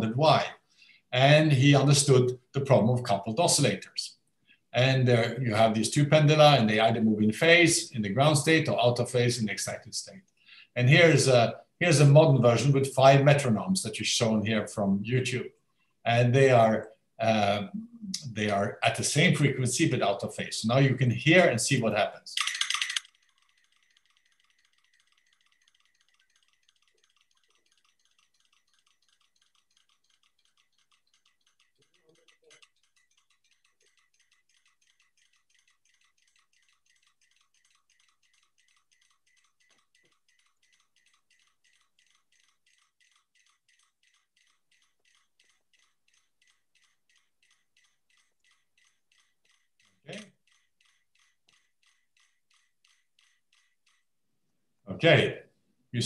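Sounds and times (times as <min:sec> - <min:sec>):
metronomes ticking: 0:22.6 - 0:54.0.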